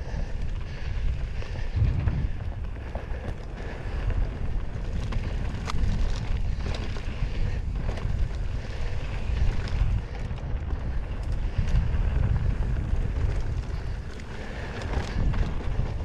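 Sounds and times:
bike clicks and rattles: 0:00.0 - 0:16.0
tyres running over dirt: 0:00.0 - 0:16.0
wind buffeting microphone: 0:00.0 - 0:16.0.

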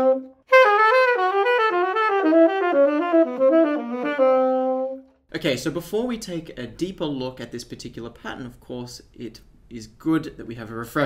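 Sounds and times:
saxophone playing jazz run: 0:00.0 - 0:05.2.

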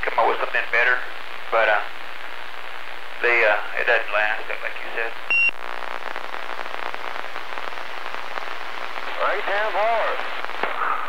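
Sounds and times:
radio static hiss with crackles: 0:00.0 - 0:11.0
high steady radio beep: 0:05.2 - 0:05.7.

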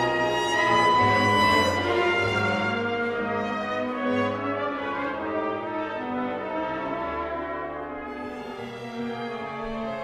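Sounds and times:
brass and horns: 0:00.0 - 0:10.0
orchestra playing sustained chords: 0:00.0 - 0:10.0.

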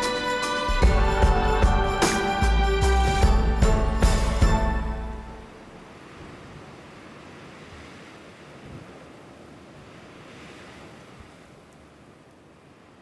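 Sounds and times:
surf washing on beach: 0:05.4 - 0:13.0.

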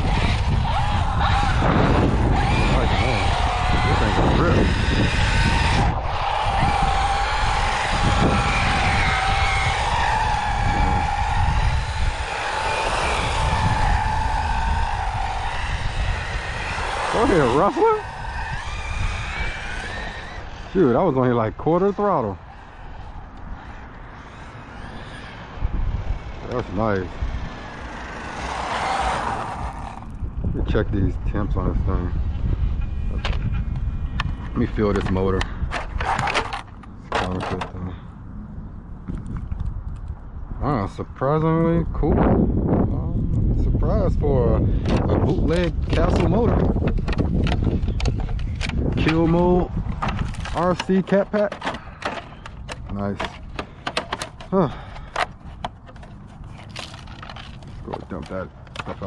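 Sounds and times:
tyres rolling on asphalt: 0:00.0 - 0:30.5, 0:32.0 - 0:40.3, 0:44.8 - 0:59.0
electric motor whine: 0:00.0 - 0:30.8, 0:31.5 - 0:38.4, 0:44.7 - 0:59.0
sharp knocks and scrapes: 0:33.1 - 0:37.8, 0:44.9 - 0:59.0.

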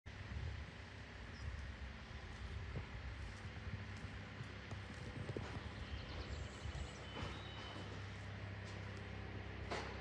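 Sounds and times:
diesel engine running: 0:00.1 - 0:10.0
machine knocking and clattering: 0:09.6 - 0:10.0.

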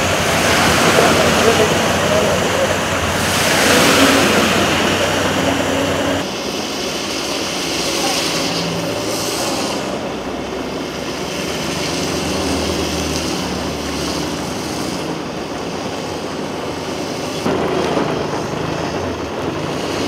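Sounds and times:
low hum of vehicle engines: 0:00.0 - 0:20.0
wind and rain rushing: 0:00.0 - 0:20.0.

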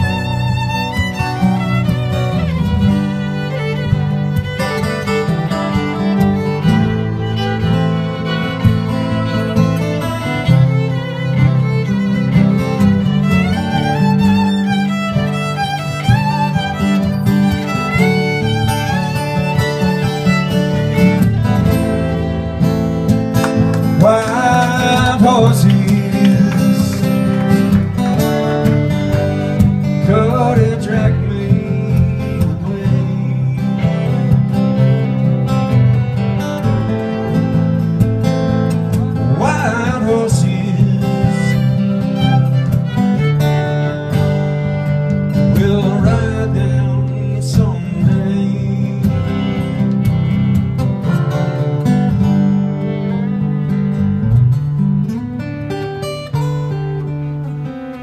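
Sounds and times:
fiddle playing with slides: 0:00.0 - 0:46.8, 0:47.8 - 0:54.2
strummed acoustic guitars: 0:00.0 - 0:58.0.

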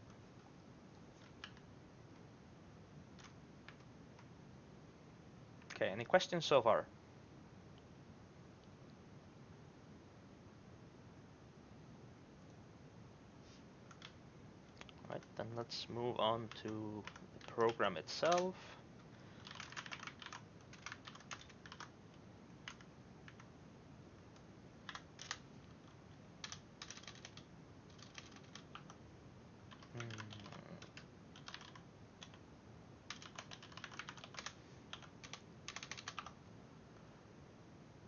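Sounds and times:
typing on computer keyboard: 0:01.2 - 0:01.7, 0:03.2 - 0:04.3, 0:13.9 - 0:14.2, 0:16.5 - 0:18.6, 0:19.4 - 0:21.9, 0:22.6 - 0:23.5, 0:24.8 - 0:29.0, 0:29.7 - 0:32.4, 0:33.1 - 0:36.4.

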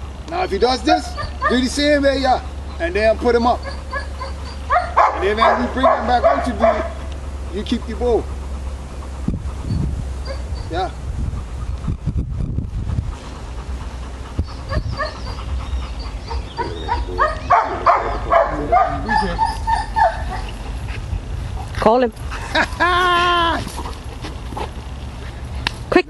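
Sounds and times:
dog barking: 0:00.8 - 0:01.8, 0:03.6 - 0:07.1, 0:10.2 - 0:10.7, 0:14.7 - 0:15.4, 0:16.2 - 0:20.6
dog whining: 0:00.9 - 0:07.1, 0:07.8 - 0:12.0, 0:13.2 - 0:20.8.

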